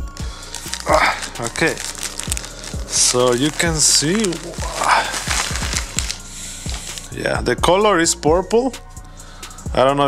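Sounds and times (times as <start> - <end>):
plastic packaging crinkling: 0.1 - 7.2.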